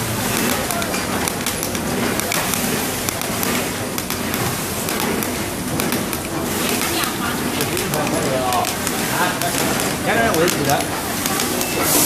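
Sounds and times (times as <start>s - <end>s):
packing machine clattering: 0.0s - 12.0s.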